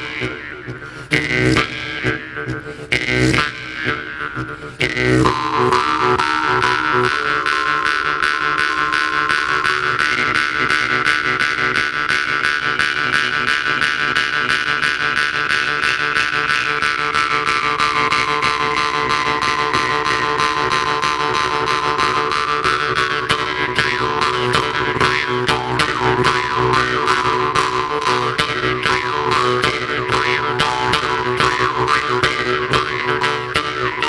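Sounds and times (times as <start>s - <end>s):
jew's harps plucking over drone: 0.0s - 34.0s.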